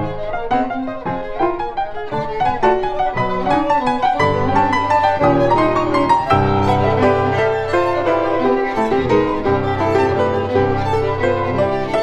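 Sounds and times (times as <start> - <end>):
bowed violin melody: 0.0 - 12.0
piano chords: 0.0 - 12.0.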